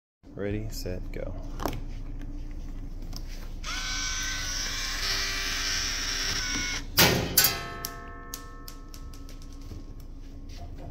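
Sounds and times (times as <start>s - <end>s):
small electric motor whirring: 3.6s - 6.9s.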